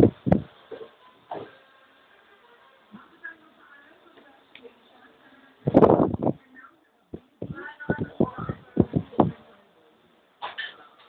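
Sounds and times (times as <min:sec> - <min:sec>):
short knocks and thumps: 0:00.0 - 0:01.5.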